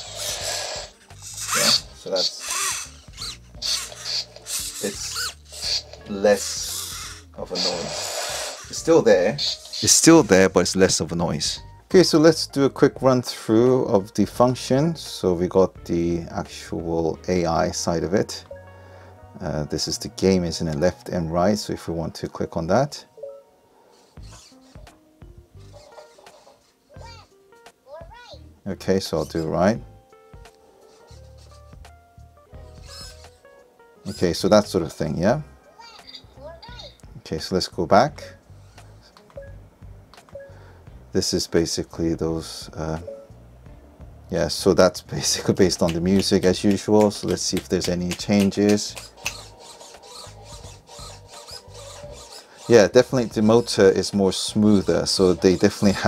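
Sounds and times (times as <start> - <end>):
small servo motors whirring: 0.0 - 10.5, 23.9 - 25.0, 25.6 - 27.2, 30.8 - 31.8, 32.6 - 33.4, 34.1 - 34.6, 38.5 - 39.2, 45.4 - 56.0.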